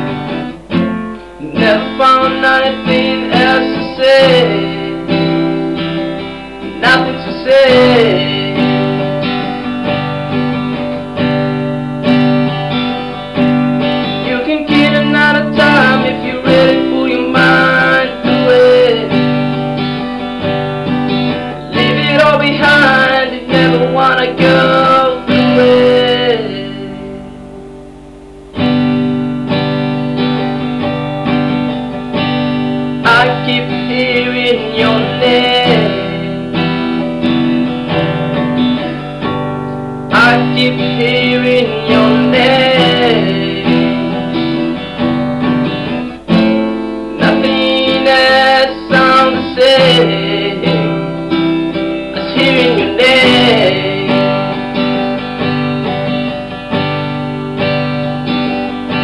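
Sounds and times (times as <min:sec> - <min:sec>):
man singing: 0:00.0 - 0:11.4, 0:12.6 - 0:27.4, 0:31.6 - 0:39.0, 0:40.1 - 0:45.1, 0:45.7 - 0:56.6
acoustic guitar strumming: 0:00.0 - 0:59.0.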